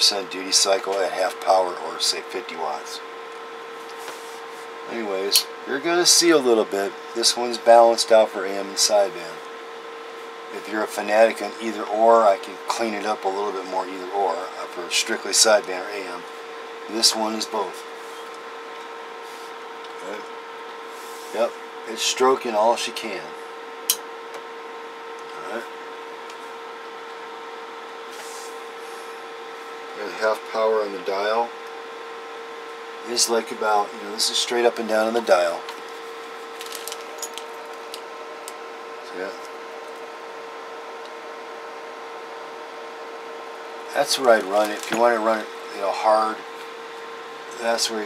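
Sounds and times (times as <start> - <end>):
electronic hum: 0.0 - 48.0.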